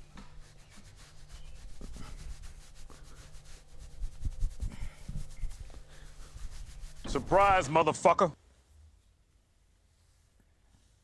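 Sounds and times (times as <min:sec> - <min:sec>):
towel rubbing wet hair: 0:00.0 - 0:07.8.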